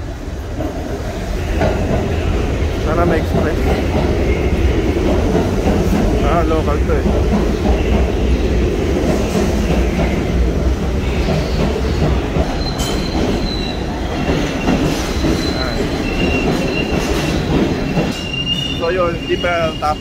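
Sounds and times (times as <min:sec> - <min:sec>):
rumble of train wheels on rails: 0:00.0 - 0:20.0
high steady squeal: 0:12.5 - 0:20.0.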